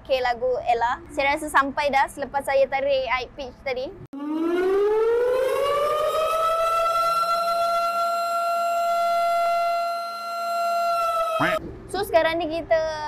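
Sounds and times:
siren-like wail: 0:04.2 - 0:11.6.

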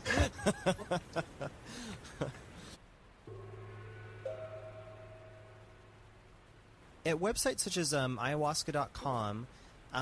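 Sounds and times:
low steady drone: 0:03.2 - 0:07.1
higher note: 0:03.3 - 0:06.8
sustained musical chord: 0:03.3 - 0:07.0.

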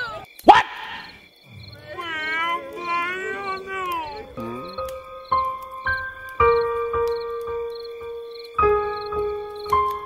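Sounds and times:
wailing cry: 0:01.5 - 0:05.3
slow music with held notes: 0:02.7 - 0:10.0.

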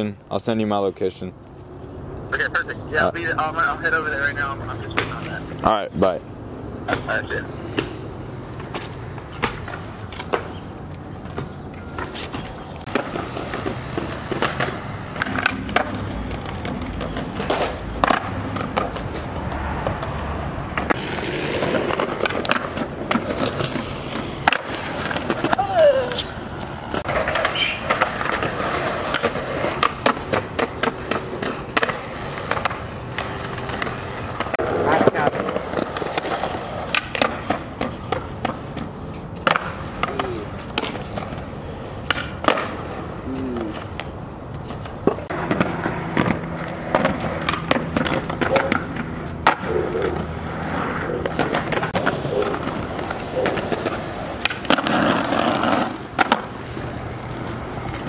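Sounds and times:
skateboard wheels rolling on concrete: 0:00.0 - 0:58.0
skateboards clacking on ground: 0:02.3 - 0:58.0
person calling out: 0:25.4 - 0:26.3, 0:43.2 - 0:43.8.

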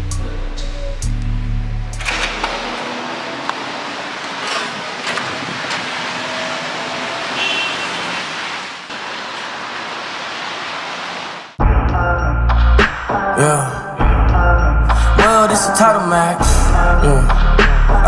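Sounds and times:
rain on wet street: 0:02.2 - 0:11.6
song with heavy deep beat: 0:11.6 - 0:18.0.

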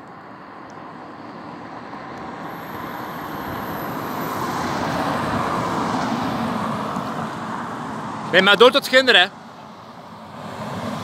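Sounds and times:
car driving past: 0:09.4 - 0:11.0.

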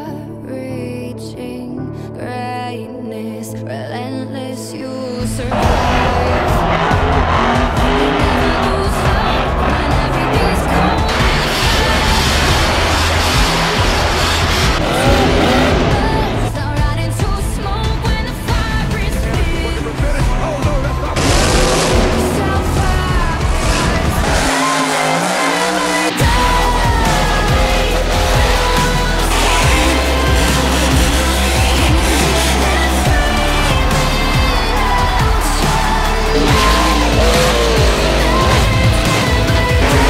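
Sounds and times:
song backing music: 0:00.0 - 0:40.0
monster truck engine at high revs: 0:05.2 - 0:40.0.

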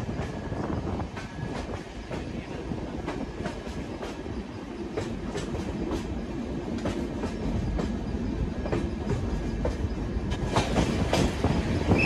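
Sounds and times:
train coach rumbling on track: 0:00.0 - 0:12.0.

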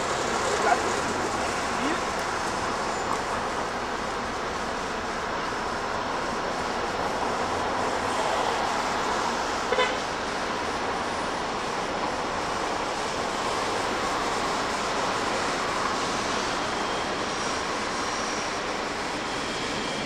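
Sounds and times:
traffic: 0:00.0 - 0:20.0
trains: 0:00.0 - 0:20.0
train horn toot: 0:09.7 - 0:10.1.

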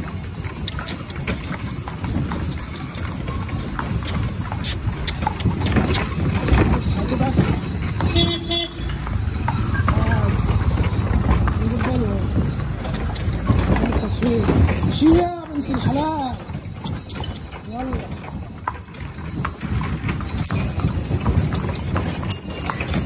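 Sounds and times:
horse hooves clip-clopping on dirt: 0:00.0 - 0:23.0
vehicle horn toot: 0:08.1 - 0:08.9
voices: 0:09.6 - 0:18.3.

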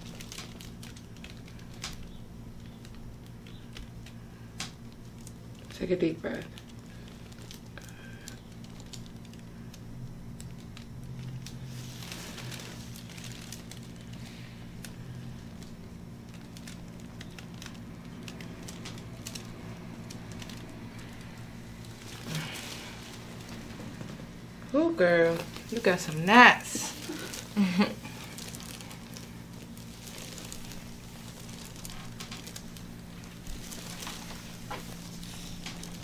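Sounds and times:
low room tone hum: 0:00.0 - 0:36.0.

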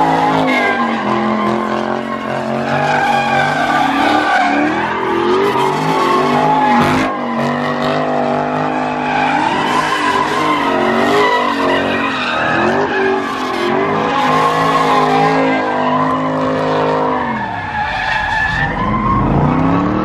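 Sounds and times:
tires squealing on pavement: 0:00.0 - 0:20.0
car engine revving hard: 0:18.7 - 0:20.0.

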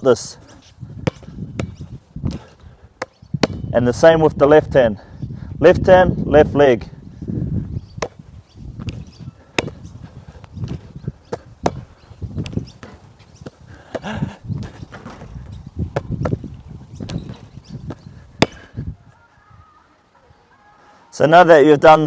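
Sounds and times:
basketball bouncing on hard court: 0:01.0 - 0:02.4, 0:03.4 - 0:03.7, 0:10.7 - 0:17.4
basketball hitting backboard and rim: 0:01.0 - 0:02.4, 0:03.4 - 0:03.7, 0:11.3 - 0:13.0, 0:14.9 - 0:16.4.

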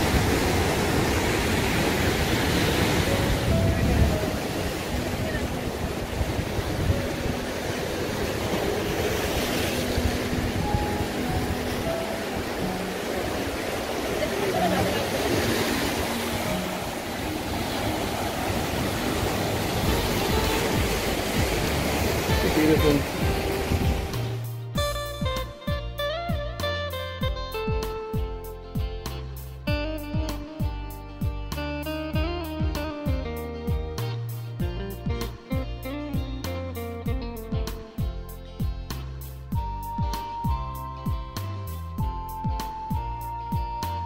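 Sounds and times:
ocean surf on rocky shore: 0:00.0 - 0:24.8.

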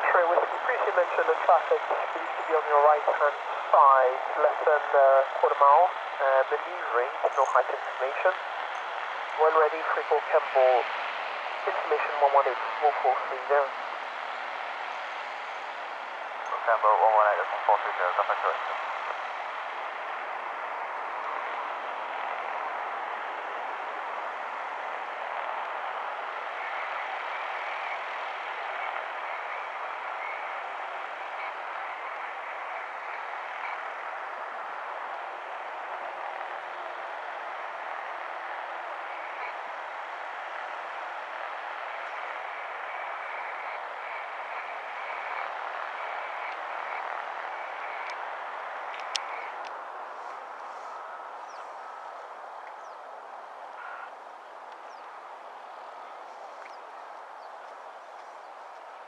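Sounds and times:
light aircraft engine drone: 0:00.0 - 0:59.0.

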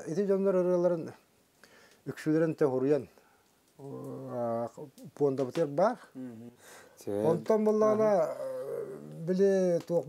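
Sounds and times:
man speaking in a low voice: 0:00.0 - 0:01.2, 0:02.1 - 0:03.2, 0:03.8 - 0:10.0.

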